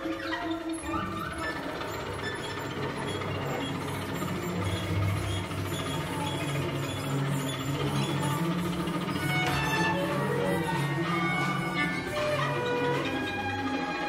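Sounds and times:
strings scratchy clicking texture: 0:00.0 - 0:14.0
low held cello and bass notes: 0:00.8 - 0:14.0.

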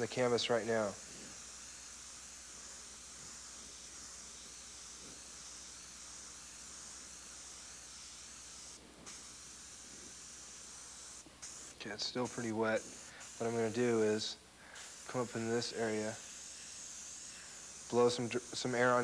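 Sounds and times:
airbrush spraying hiss: 0:00.0 - 0:19.0.

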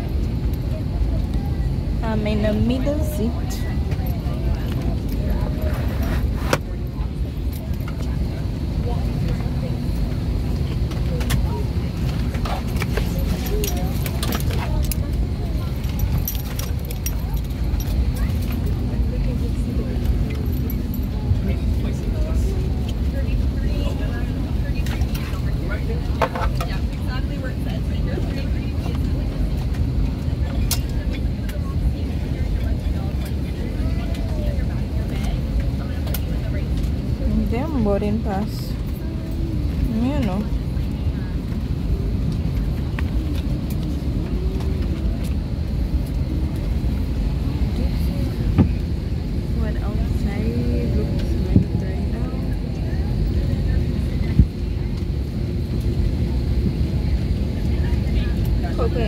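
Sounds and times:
airliner cabin rumble: 0:00.0 - 0:59.0
faint voices of passengers: 0:00.0 - 0:59.0.

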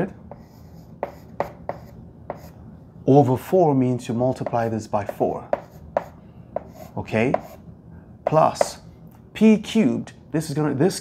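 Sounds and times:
chalk scratching on blackboard: 0:00.3 - 0:02.6, 0:04.4 - 0:07.6.

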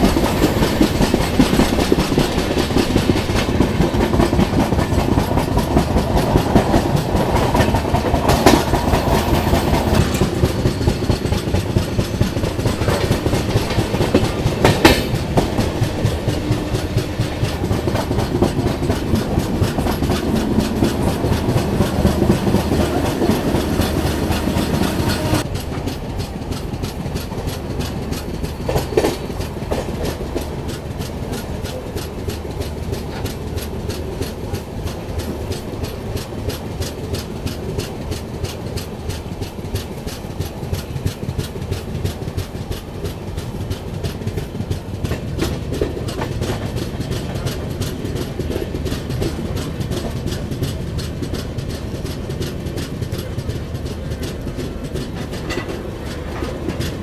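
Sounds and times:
rapid clickety-clack: 0:00.0 - 0:57.0
train wheels rumbling on rails: 0:00.0 - 0:57.0.

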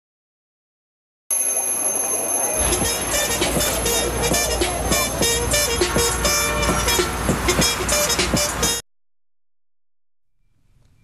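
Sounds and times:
alarm clock bells ringing: 0:01.3 - 0:04.6.

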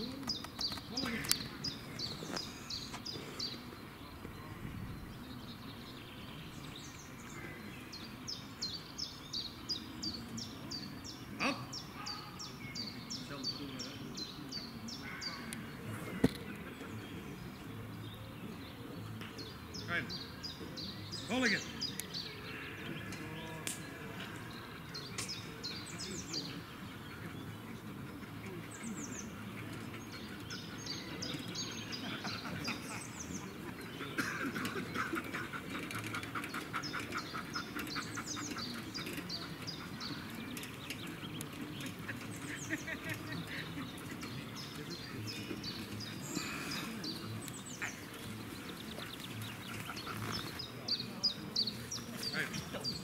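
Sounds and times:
open-air background noise: 0:00.0 - 0:53.0
songbirds chirping: 0:00.0 - 0:53.0.

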